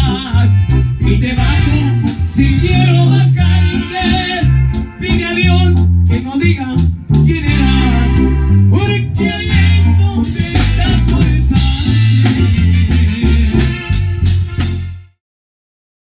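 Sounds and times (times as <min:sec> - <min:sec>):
man singing: 0:00.0 - 0:14.2
drum kit: 0:00.0 - 0:15.2
heavy bass notes: 0:00.0 - 0:15.2
keyboard playing: 0:00.0 - 0:15.2.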